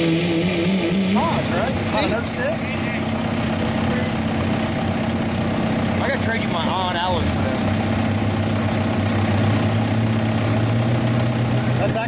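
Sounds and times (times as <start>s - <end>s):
diesel engine running under load: 0.0s - 12.0s.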